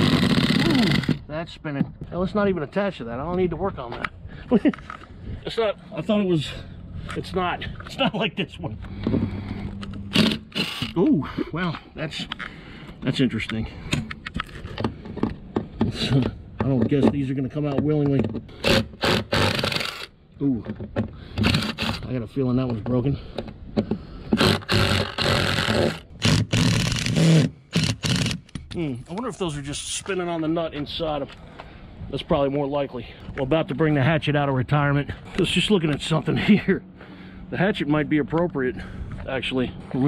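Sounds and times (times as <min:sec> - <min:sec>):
impact driver running: 0:00.0 - 0:01.2, 0:09.9 - 0:11.0, 0:18.6 - 0:20.1, 0:21.4 - 0:22.0, 0:24.4 - 0:28.5
power drill short bursts: 0:00.0 - 0:01.2, 0:10.1 - 0:11.0, 0:18.6 - 0:20.1, 0:21.4 - 0:22.0, 0:24.4 - 0:28.4.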